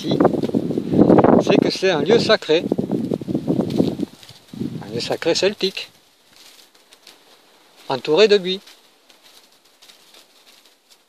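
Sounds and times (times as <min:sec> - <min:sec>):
bird calling: 0:00.0 - 0:00.4.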